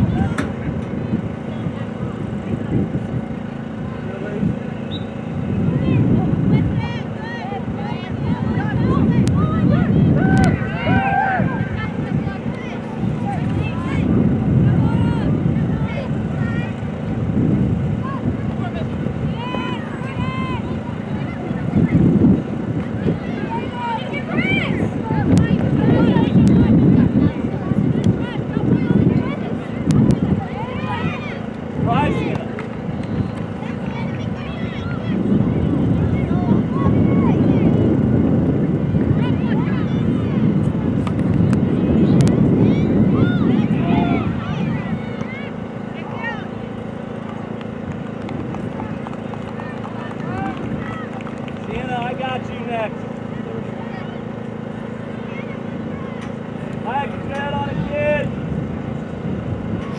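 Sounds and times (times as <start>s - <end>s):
distant voices calling out: 0.0s - 59.9s
wind buffeting microphone: 0.0s - 59.9s
distant shouted calls: 4.7s - 5.3s.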